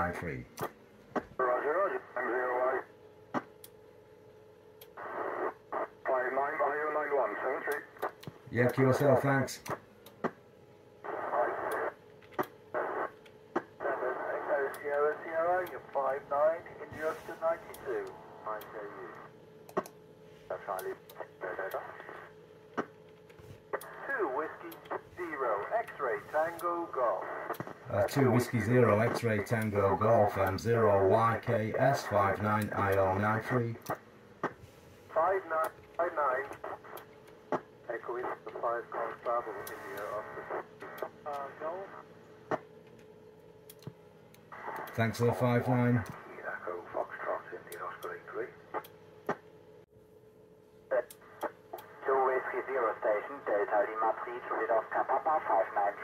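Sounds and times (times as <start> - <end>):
radio voices through speaker: 1.4 - 2.9, 5.7 - 9.7, 13.8 - 19.3, 20.5 - 22.3, 23.8 - 34.0, 35.1 - 37.0, 37.8 - 42.0, 44.6 - 48.8, 50.9 - 56.0
click: 4.8 - 5.0, 19.7 - 20.0, 42.5 - 45.0, 51.1 - 51.9
radio clicks and pops: 11.0 - 27.8, 35.4 - 42.7, 43.8 - 45.1.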